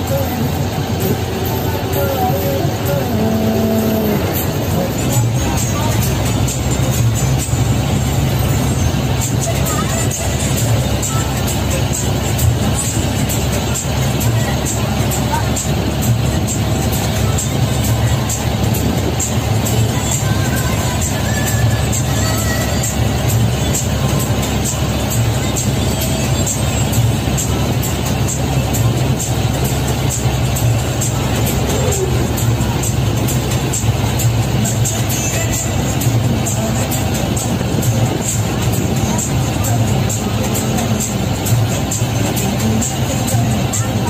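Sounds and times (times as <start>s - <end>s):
bus engine drone: 0.0s - 44.0s
music with singing and beat: 0.0s - 44.0s.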